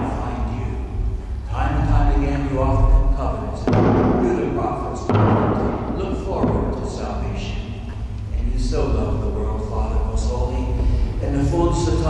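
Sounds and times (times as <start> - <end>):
man speaking: 0.0 - 12.0.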